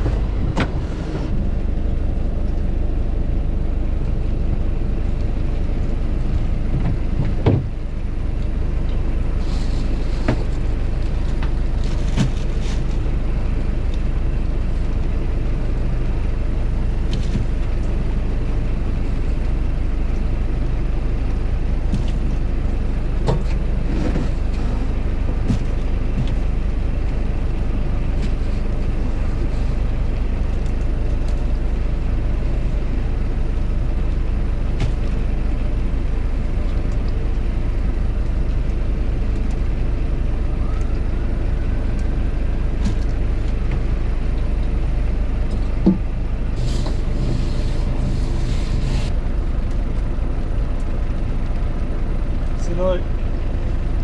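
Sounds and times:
boat engine droning: 0:00.0 - 0:54.0.

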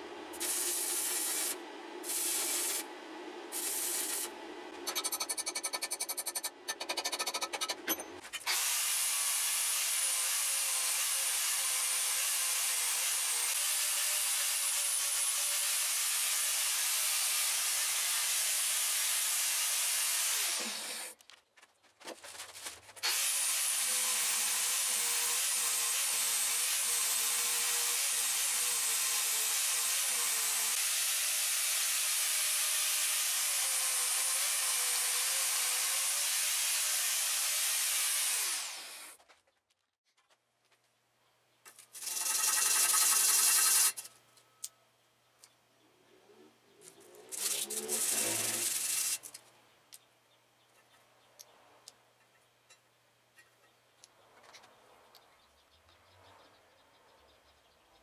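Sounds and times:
angle grinder grinding steel: 0:00.0 - 0:02.9, 0:23.0 - 0:39.1, 0:42.0 - 0:44.1, 0:47.2 - 0:49.4.

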